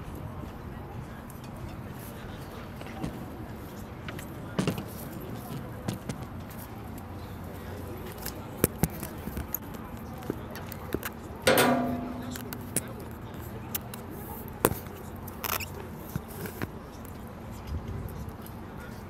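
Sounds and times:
outdoor background noise: 0.0 - 19.0.

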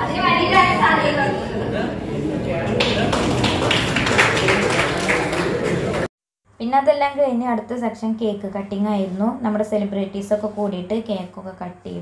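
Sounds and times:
murmur of voices: 0.0 - 6.1
people clapping in rhythm: 2.6 - 6.1.

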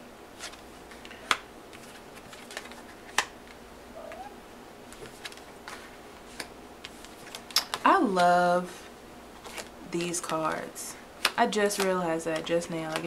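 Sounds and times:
cards slapping on table: 11.2 - 13.0.

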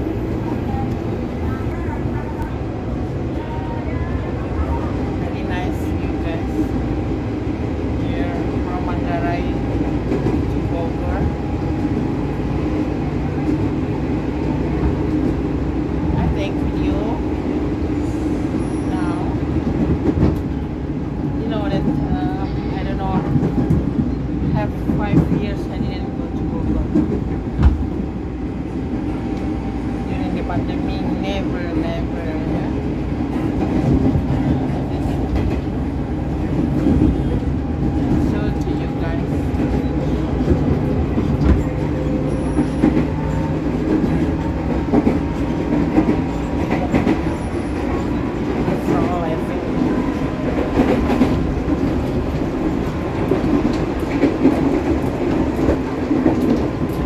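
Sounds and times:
train rumble inside carriage: 0.0 - 57.0.

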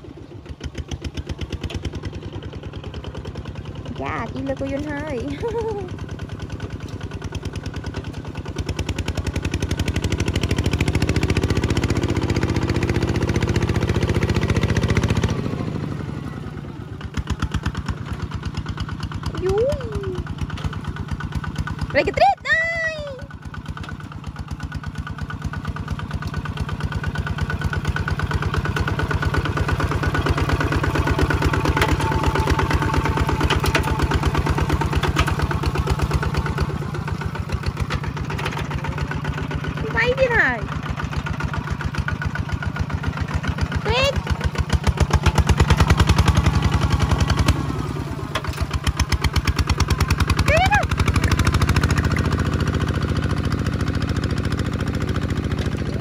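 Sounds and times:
diesel engine chugging: 0.0 - 56.0.

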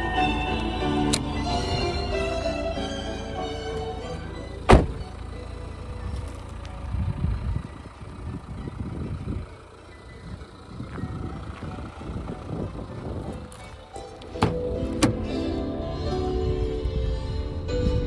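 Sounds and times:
car door shutting: 3.6 - 5.3, 12.9 - 15.5
footsteps on gravel: 6.0 - 6.8, 10.3 - 15.0.

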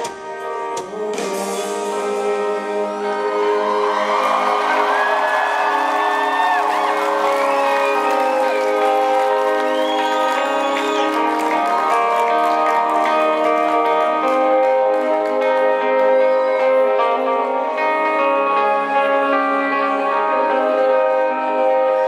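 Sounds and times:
live rock band playing: 0.0 - 22.0
crowd cheering and whooping: 3.2 - 17.2.

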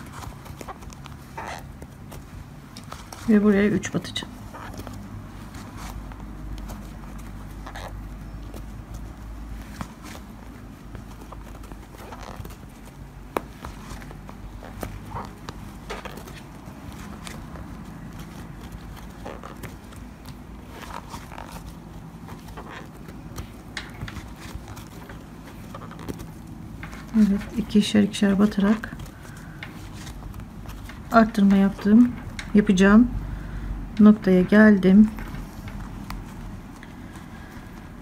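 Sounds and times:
cord rubbing through leather: 0.0 - 38.0.

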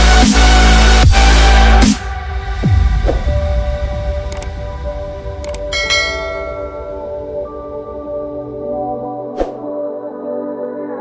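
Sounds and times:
bright bell chime: 5.7 - 7.4.

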